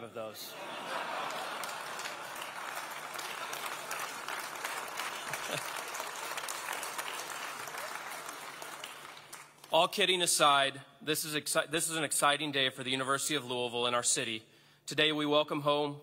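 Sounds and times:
audience applauding: 0:00.6 - 0:09.7.

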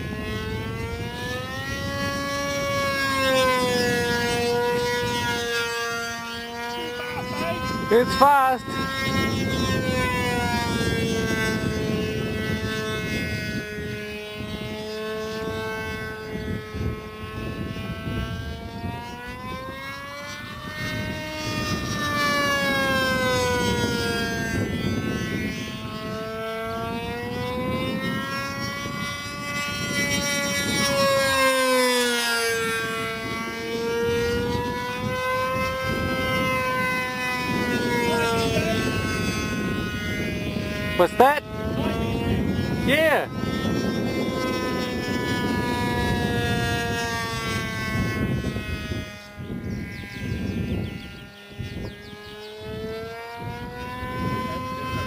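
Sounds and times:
model plane droning overhead: 0:00.0 - 0:55.0.

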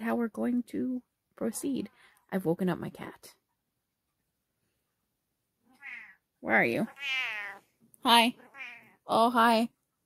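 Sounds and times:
cat meowing: 0:05.8 - 0:06.2, 0:06.9 - 0:07.6, 0:08.4 - 0:09.0.

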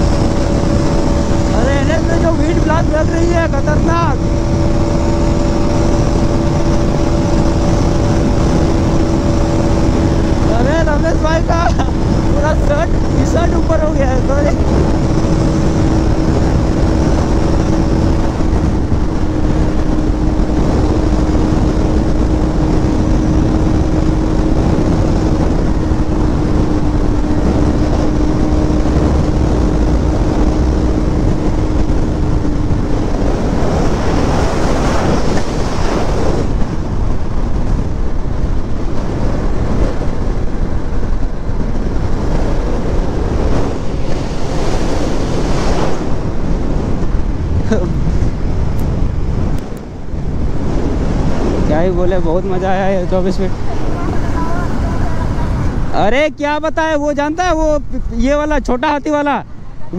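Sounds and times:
motorcycle engine drone: 0:00.0 - 0:59.9
wind on camera microphone: 0:00.0 - 0:59.9.

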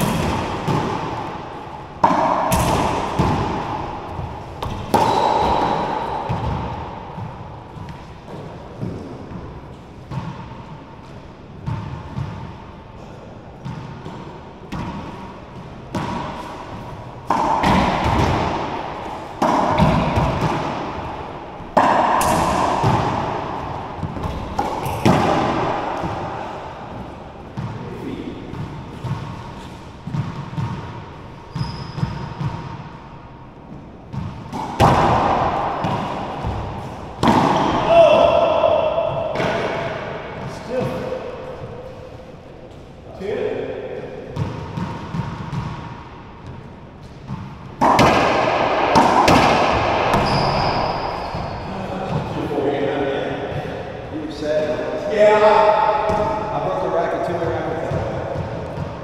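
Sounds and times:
racquetball smacks echoing: 0:00.0 - 0:33.2, 0:34.0 - 0:42.8, 0:43.6 - 0:59.0.

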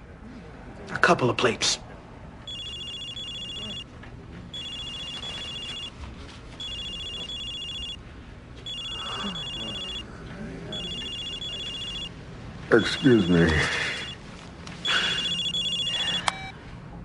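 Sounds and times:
cell phone ringtone: 0:02.5 - 0:03.9, 0:04.5 - 0:05.9, 0:06.6 - 0:08.0, 0:08.6 - 0:10.1, 0:10.7 - 0:12.1, 0:12.7 - 0:14.2, 0:14.8 - 0:16.5.

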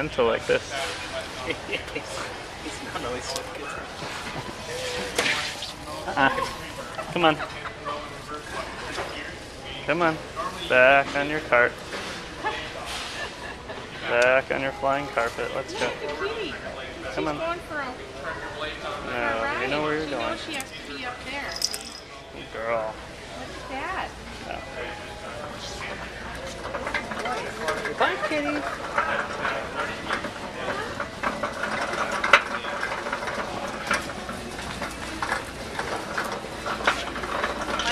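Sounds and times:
faint indistinct voices: 0:00.0 - 0:37.9
low background noise: 0:00.0 - 0:37.9.

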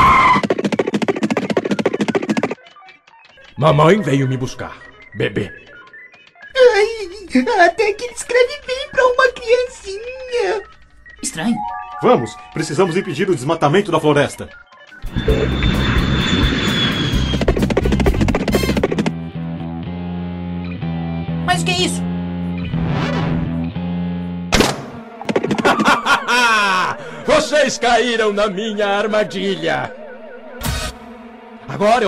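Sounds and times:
descending rapid beats: 0:00.0 - 0:16.1, 0:17.0 - 0:19.1, 0:24.6 - 0:32.0.

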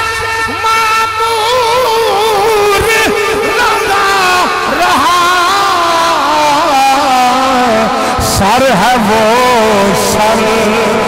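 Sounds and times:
man singing long held note: 0:00.0 - 0:11.0.

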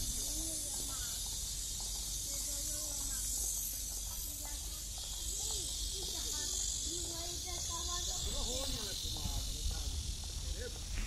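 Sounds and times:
cicadas droning: 0:00.0 - 0:11.0.

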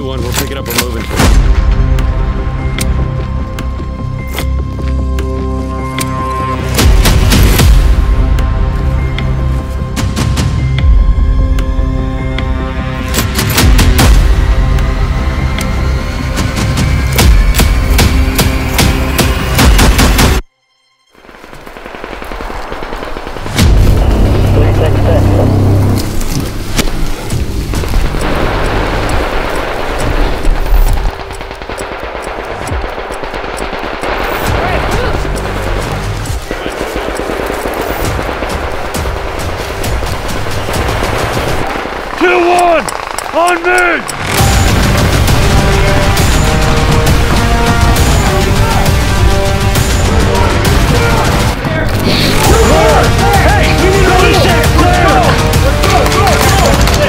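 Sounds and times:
soundtrack music: 0:00.0 - 0:57.0
rapid gunfire: 0:17.2 - 0:20.4, 0:21.3 - 0:24.9, 0:27.6 - 0:57.0.

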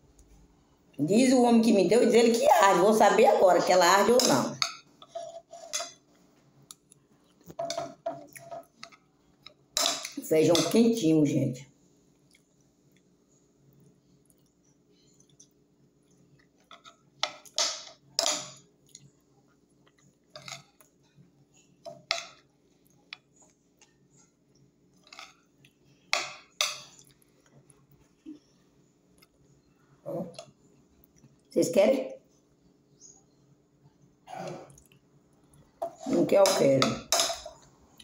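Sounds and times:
chewing and smacking: 0:12.1 - 0:13.2, 0:13.8 - 0:17.6, 0:18.8 - 0:21.2, 0:26.8 - 0:28.2, 0:34.7 - 0:35.8.

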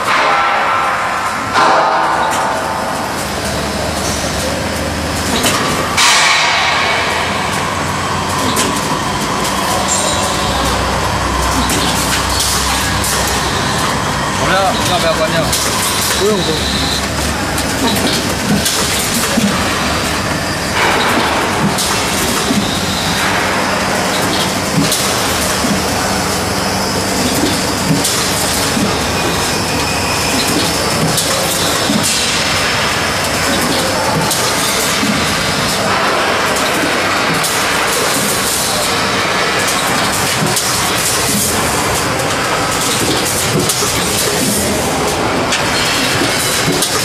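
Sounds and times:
packing machine running: 0:00.0 - 0:47.0
machine clicks: 0:14.5 - 0:25.9, 0:29.8 - 0:47.0.

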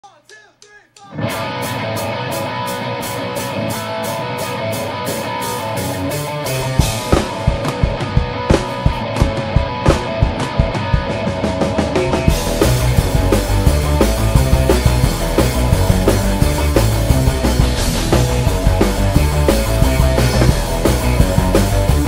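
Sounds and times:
drum kit beats: 0:00.0 - 0:22.0
bass guitar: 0:01.1 - 0:22.0.

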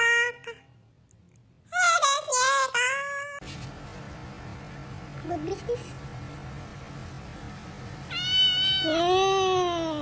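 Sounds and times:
cat meowing: 0:08.1 - 0:09.1.

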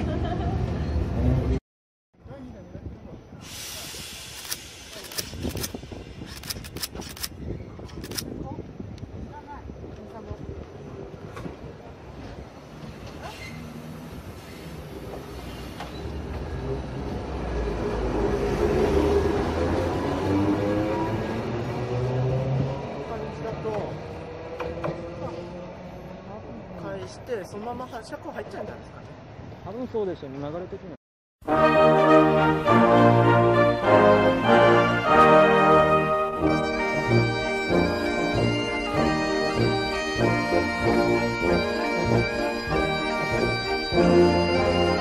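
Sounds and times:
sharp clicks: 0:04.3 - 0:08.3.

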